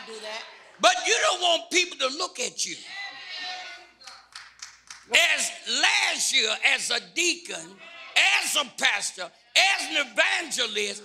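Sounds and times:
sharp hand claps: 0:04.0 - 0:05.2.

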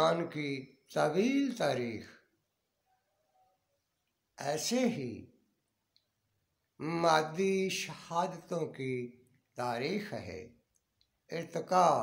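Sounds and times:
man speaking: 0:00.0 - 0:02.3, 0:04.4 - 0:05.3, 0:06.8 - 0:10.6, 0:11.3 - 0:12.0.

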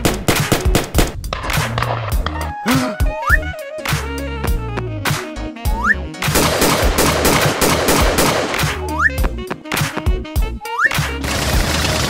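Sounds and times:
background music: 0:00.0 - 0:12.0
toy blaster gunshots: 0:06.4 - 0:08.8.

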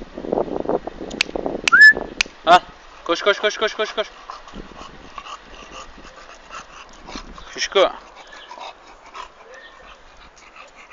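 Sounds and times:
dog breathing with mouth open: 0:04.0 - 0:10.9.

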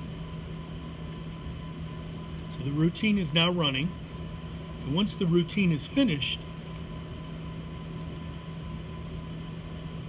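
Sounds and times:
faint high machine whine: 0:00.0 - 0:10.0
printing press machine hum: 0:00.0 - 0:10.0.

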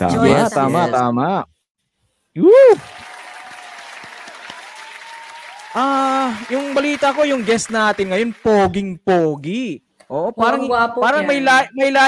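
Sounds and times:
loud whoop: 0:02.4 - 0:06.6
faint applause: 0:02.5 - 0:08.9.

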